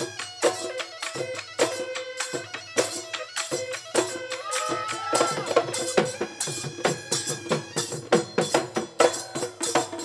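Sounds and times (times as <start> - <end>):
dhol drum beating: 0.0 - 10.0
hand cymbals: 0.0 - 10.0.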